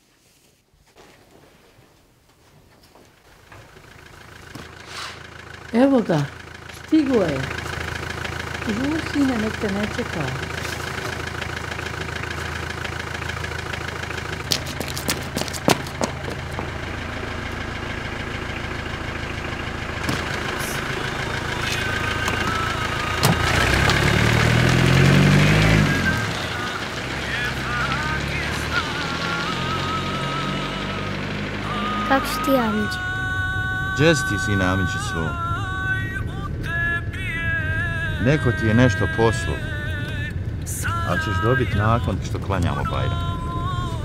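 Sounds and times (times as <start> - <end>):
car engine idling: 3.1 - 44.0.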